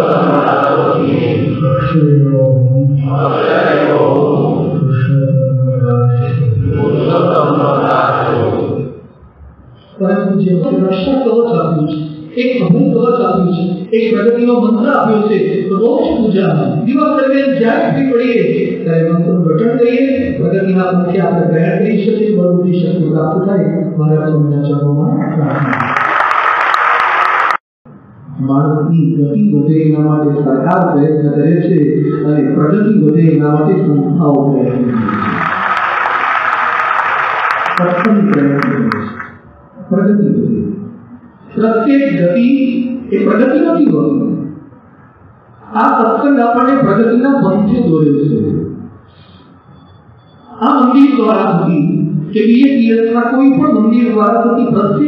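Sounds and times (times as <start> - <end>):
devotional chanting with music: 0.0 - 9.0.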